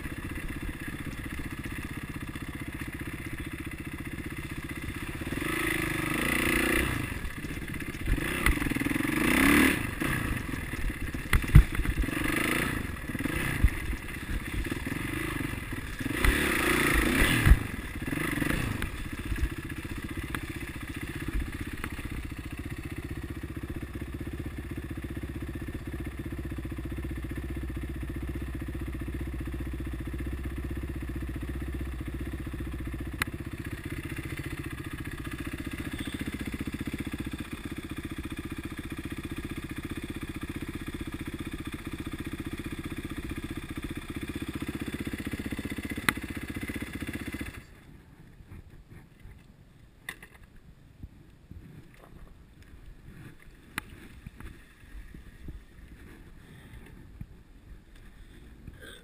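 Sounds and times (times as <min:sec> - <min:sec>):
dirt bike engine running: 0:00.0 - 0:49.0.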